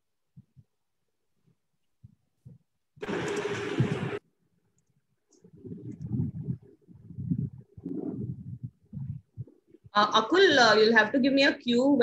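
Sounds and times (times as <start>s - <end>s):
muffled noise and hum: 2.4s - 4.2s, 4.9s - 10.9s.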